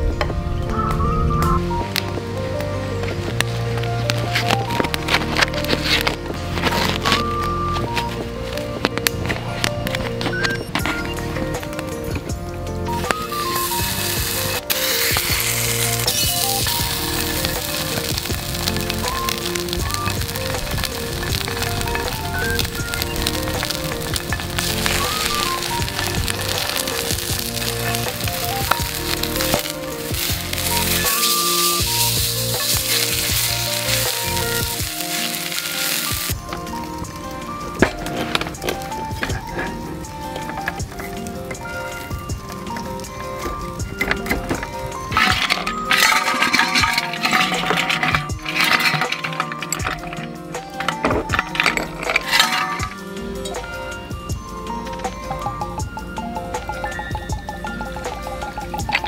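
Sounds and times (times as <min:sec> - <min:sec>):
background music: 0:00.0 - 0:59.0
patty sizzling in frying pan: 0:13.0 - 0:50.8.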